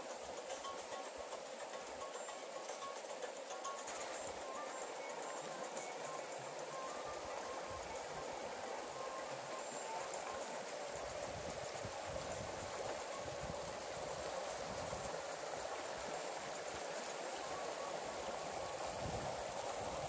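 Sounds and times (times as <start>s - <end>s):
stream rushing over stones: 0.0s - 20.0s.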